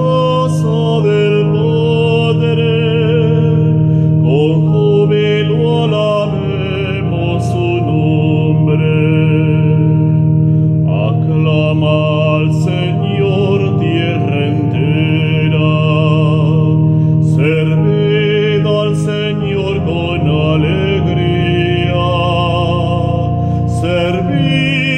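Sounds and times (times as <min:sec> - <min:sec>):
man singing with vibrato: 0:00.0 - 0:24.9
organ chords: 0:00.0 - 0:24.9.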